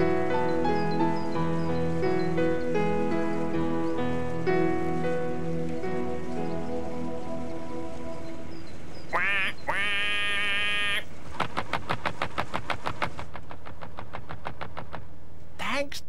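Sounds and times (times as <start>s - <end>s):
comic duck quack: 9.1s - 11.1s.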